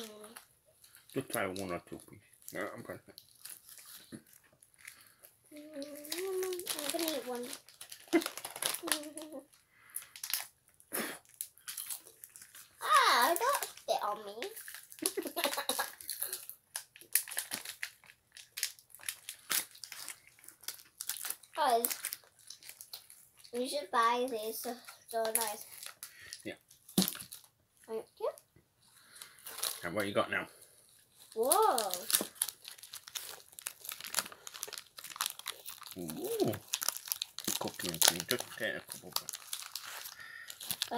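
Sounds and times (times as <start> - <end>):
girl's wordless voice: 0.0 - 0.4, 5.5 - 7.7, 8.8 - 9.5, 12.8 - 14.6, 21.6 - 22.0, 23.5 - 25.8, 27.9 - 28.4, 31.3 - 32.3, 36.1 - 36.6
wrapper crinkling: 2.4 - 10.6, 11.2 - 27.5, 29.0 - 30.2, 30.9 - 40.9
paper sweet packet crackling: 3.1 - 10.6, 11.2 - 26.4, 31.2 - 40.9
sweet being eaten: 31.9 - 38.4.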